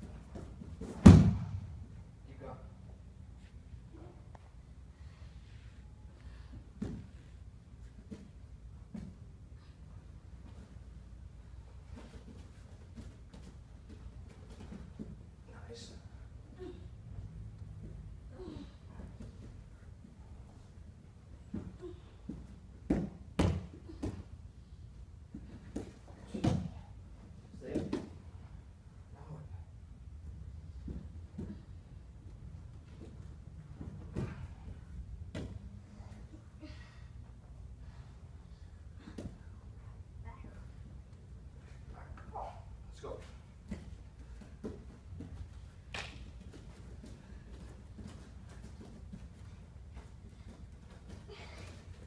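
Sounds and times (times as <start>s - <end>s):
bodies thumping on foam mat: 0.0s - 1.8s
sharp slap on mat: 0.9s - 1.6s.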